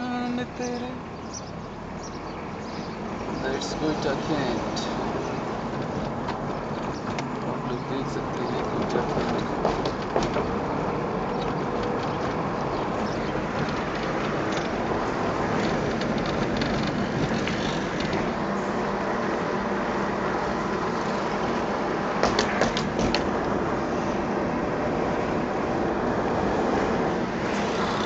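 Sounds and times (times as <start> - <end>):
car road and engine noise: 0.0 - 28.0
faint clicks and rattles: 8.3 - 10.6, 11.2 - 18.4.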